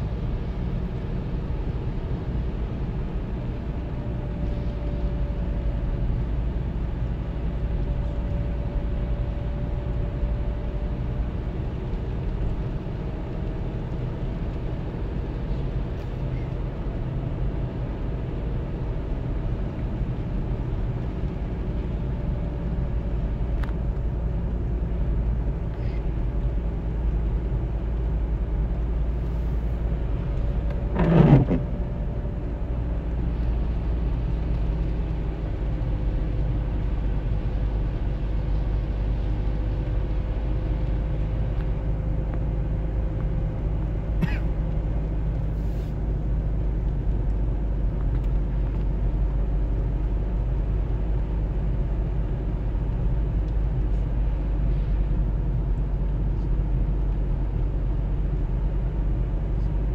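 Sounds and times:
car engine and tyre noise: 0.0s - 59.9s.

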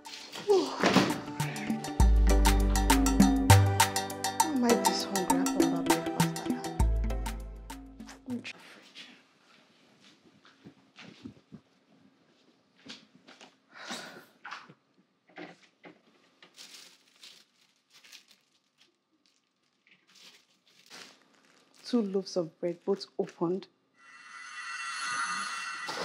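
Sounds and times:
plastic bags crinkling: 16.3s - 22.1s.

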